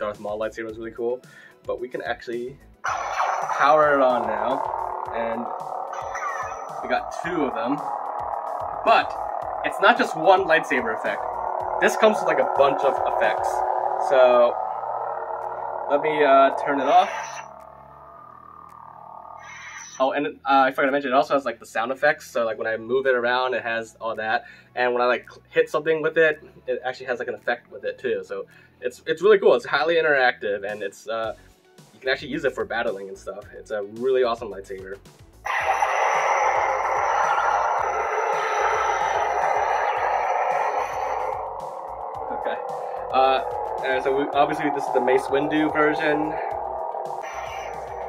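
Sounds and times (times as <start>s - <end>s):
lightsaber powering down: 2.9s - 20.0s, 35.5s - 48.0s.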